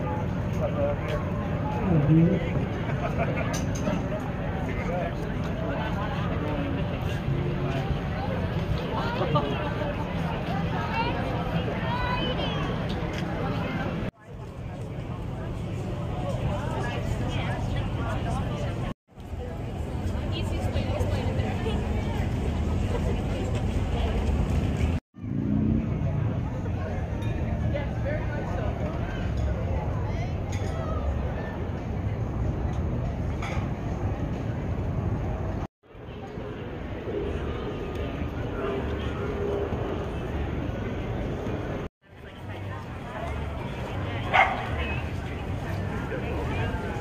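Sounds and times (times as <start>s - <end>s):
people talking: 0.0s - 47.0s
dog bark: 44.3s - 44.7s.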